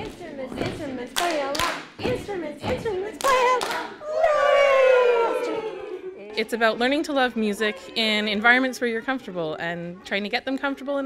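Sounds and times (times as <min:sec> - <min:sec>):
people clapping in rhythm: 0:00.0 - 0:04.4.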